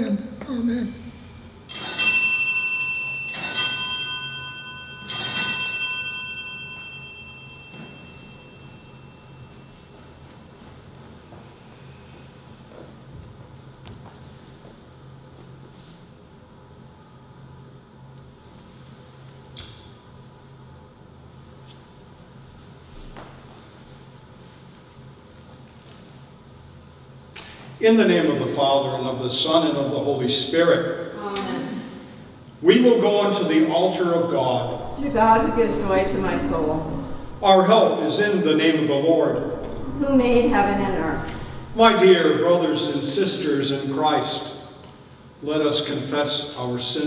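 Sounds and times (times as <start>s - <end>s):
faint electrical hum: 0.0s - 47.0s
bell ringing: 1.7s - 10.2s, 34.6s - 37.5s, 39.3s - 42.0s
man speaking: 32.6s - 34.8s, 37.4s - 39.5s, 41.7s - 44.6s.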